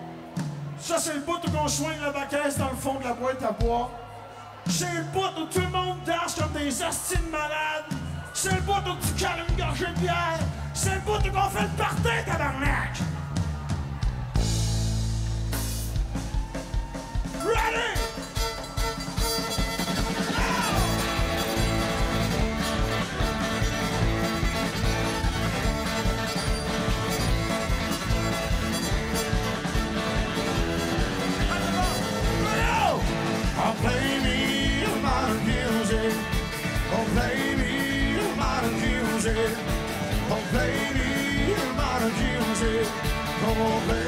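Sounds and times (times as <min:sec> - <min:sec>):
country-rock band playing: 0:00.0 - 0:02.0, 0:05.5 - 0:44.0
fiddle lead: 0:18.0 - 0:35.3.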